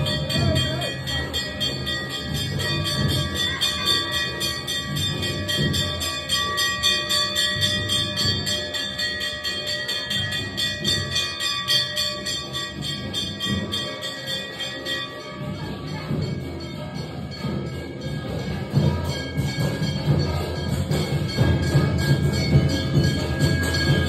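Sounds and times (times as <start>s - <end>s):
brass bells ringing: 0.0s - 24.0s.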